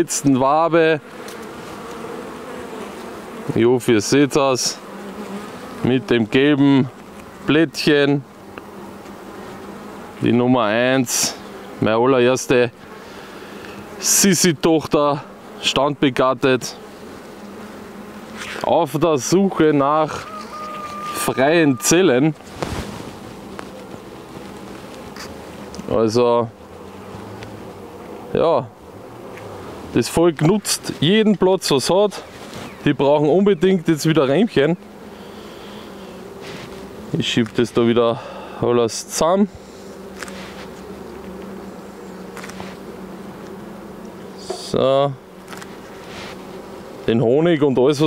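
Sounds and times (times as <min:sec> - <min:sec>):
honeybees buzzing in a low hum: 0:00.0 - 0:48.0.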